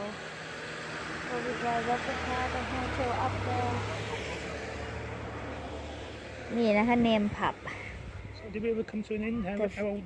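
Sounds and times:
car driving slowly past: 0:00.0 - 0:10.0.

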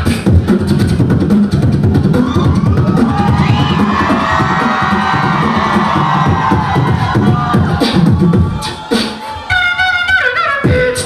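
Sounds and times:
beatboxing through speakers: 0:00.0 - 0:11.0
crowd cheering: 0:01.7 - 0:10.4.

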